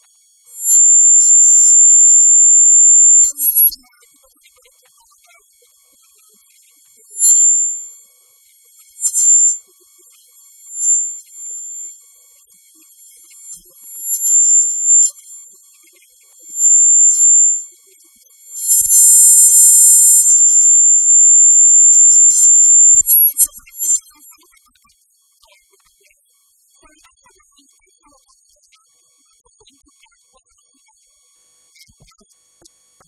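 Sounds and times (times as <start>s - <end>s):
shrill electronic tones: 0.6s - 3.8s, 7.2s - 7.9s, 9.0s - 9.6s, 10.8s - 11.9s, 13.9s - 15.3s, 16.6s - 17.6s, 18.6s - 24.0s.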